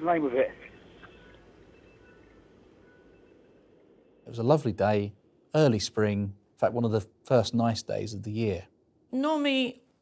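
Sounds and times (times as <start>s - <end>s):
faint hiss: 4.3s - 8.6s.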